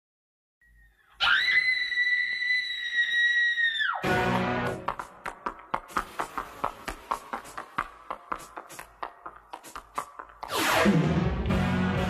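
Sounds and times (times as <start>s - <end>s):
shrill high-pitched scream: 0.8s - 4.1s.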